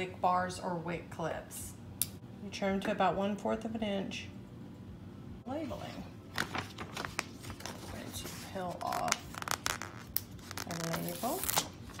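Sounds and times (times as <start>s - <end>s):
label peeling off paper: 6.4s - 12.0s.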